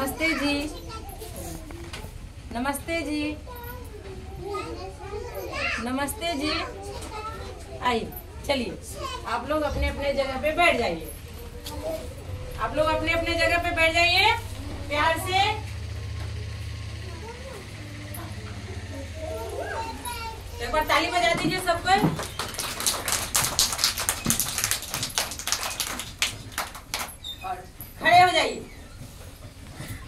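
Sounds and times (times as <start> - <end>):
young children chattering: 0.0 - 2.4, 3.2 - 23.0
woman's voice: 2.5 - 3.4, 12.5 - 15.7, 20.6 - 22.2
low steady hum: 7.8 - 28.8.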